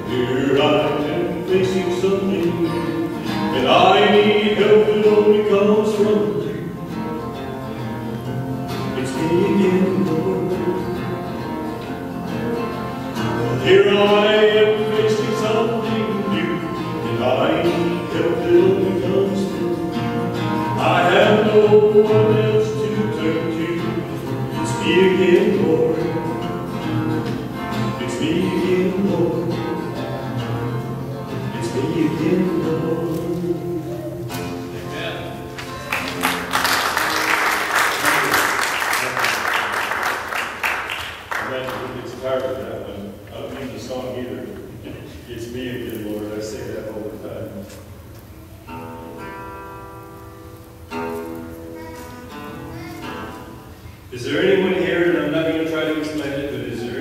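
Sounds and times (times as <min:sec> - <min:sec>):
man singing: 0:00.0 - 0:06.9, 0:08.8 - 0:11.5, 0:13.2 - 0:30.5, 0:31.4 - 0:35.4, 0:54.1 - 0:57.0
acoustic guitar: 0:00.0 - 0:57.0.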